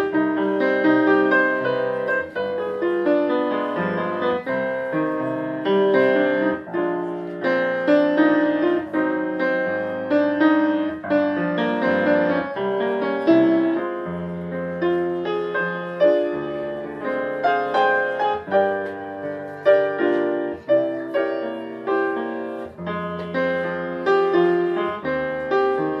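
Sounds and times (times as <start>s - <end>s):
jazz piano solo: 0.0s - 26.0s.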